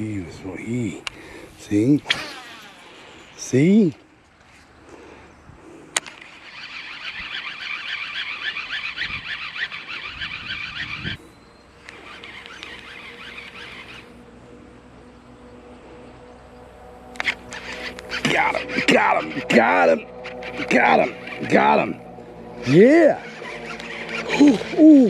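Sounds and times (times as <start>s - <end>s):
fishing reel cranking: 2.1s - 3.3s, 6.2s - 11.0s, 11.9s - 14.0s, 17.2s - 21.8s, 22.6s - 25.0s.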